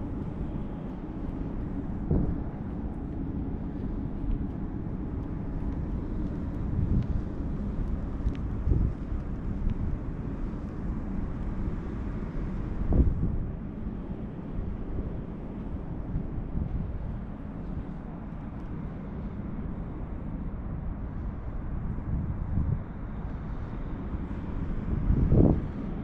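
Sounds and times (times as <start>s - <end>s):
steady low rumble: 0.0s - 26.0s
wind buffeting microphone: 0.0s - 26.0s.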